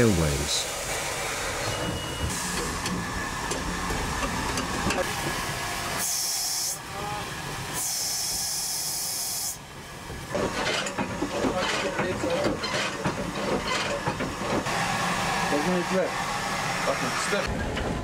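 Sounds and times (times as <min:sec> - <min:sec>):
steam hissing bursts: 0:00.0 - 0:03.4, 0:04.0 - 0:09.7
steam locomotive working noise: 0:00.0 - 0:18.0.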